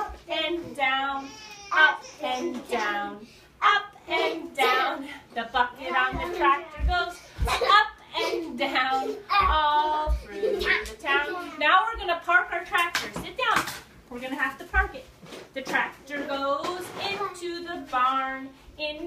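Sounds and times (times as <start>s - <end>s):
woman and children singing: 0.0s - 10.2s.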